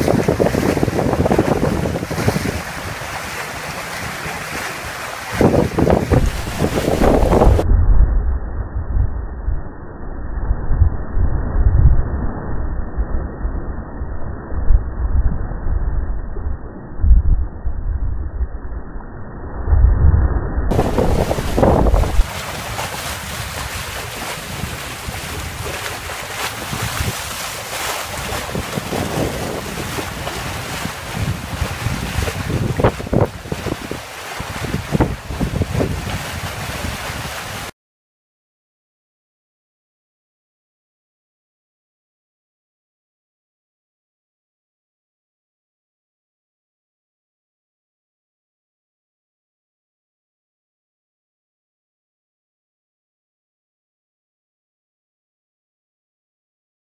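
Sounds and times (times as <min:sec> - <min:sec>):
foaming wake rushing: 0:00.0 - 0:07.6, 0:20.7 - 0:37.7
water splashes: 0:00.0 - 0:07.6, 0:20.7 - 0:37.7
wind buffeting microphone: 0:00.0 - 0:09.5, 0:19.7 - 0:37.7
heavy low rumble: 0:05.6 - 0:27.2.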